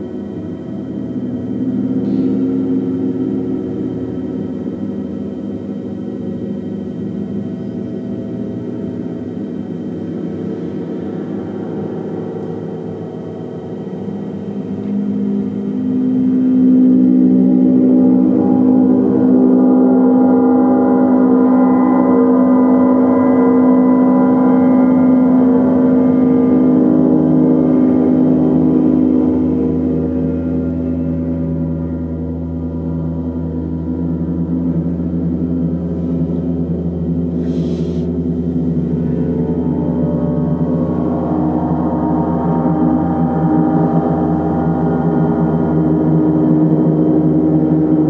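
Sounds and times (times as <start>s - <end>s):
deeper gong tone: 0.0s - 48.0s
large gong ringing: 0.0s - 48.0s.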